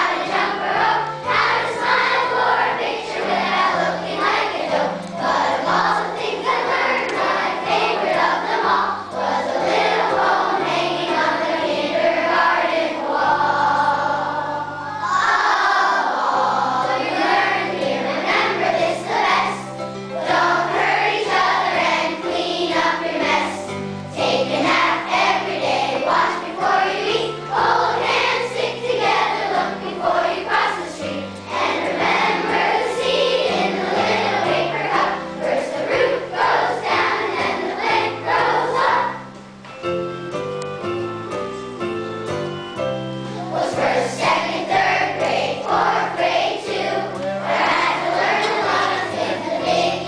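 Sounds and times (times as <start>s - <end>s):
children's choir singing: 0.0s - 39.6s, 42.4s - 50.0s
instrumental accompaniment: 0.0s - 50.0s.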